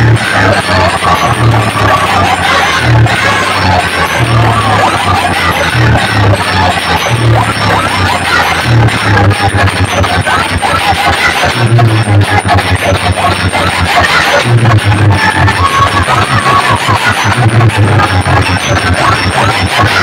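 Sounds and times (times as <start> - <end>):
heavy deep bass line: 0.0 - 20.0
loud dance music: 0.0 - 20.0.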